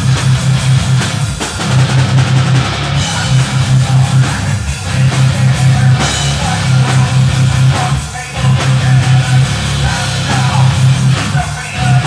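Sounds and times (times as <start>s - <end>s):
distorted electric guitars and bass: 0.0s - 12.0s
drum kit: 0.0s - 12.0s.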